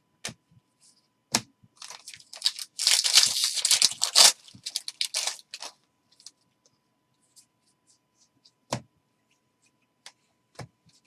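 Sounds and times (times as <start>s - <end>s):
plastic wrapper crinkling: 1.8s - 6.4s.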